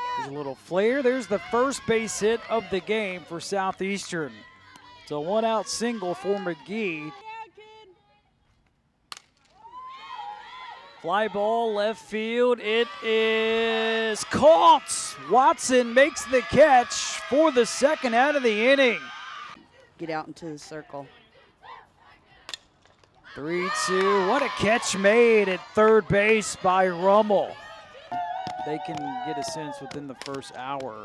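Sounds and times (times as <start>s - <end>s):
sharp crack: 9.1s - 9.6s
faint voices calling out: 11.0s - 20.0s, 23.2s - 30.7s.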